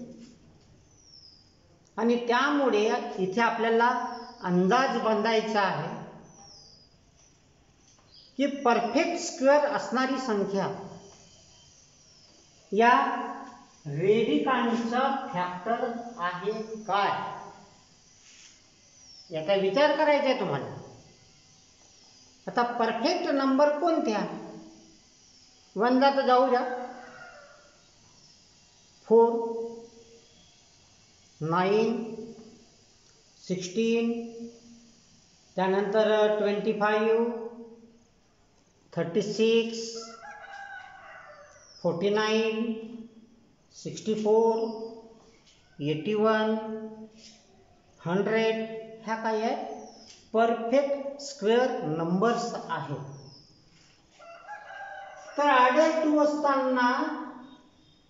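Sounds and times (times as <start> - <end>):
faint animal call: 26.6 - 28.3, 39.9 - 41.8.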